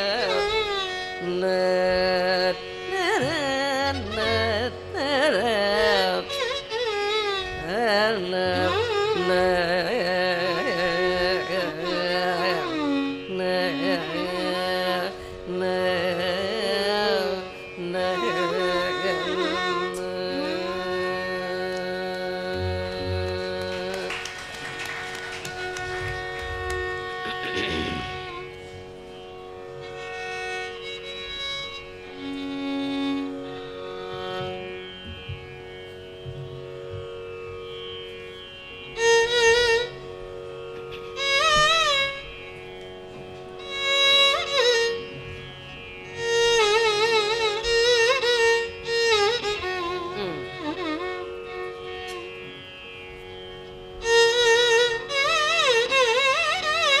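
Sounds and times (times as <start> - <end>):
violin playing slow phrases: 0.0 - 57.0.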